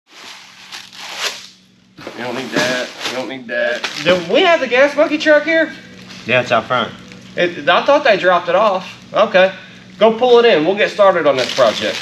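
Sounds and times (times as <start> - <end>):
rummaging through cardboard box: 2.1 - 4.2.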